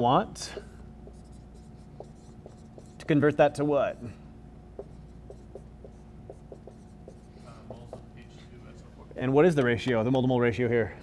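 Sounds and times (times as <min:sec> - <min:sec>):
low room hum: 0:00.0 - 0:11.0
marker writing on whiteboard: 0:00.5 - 0:04.1, 0:04.7 - 0:09.8.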